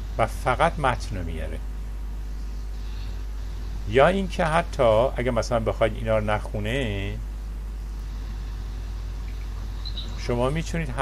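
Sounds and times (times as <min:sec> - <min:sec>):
steady low hum: 0:00.0 - 0:11.0
man's voice: 0:10.2 - 0:11.0.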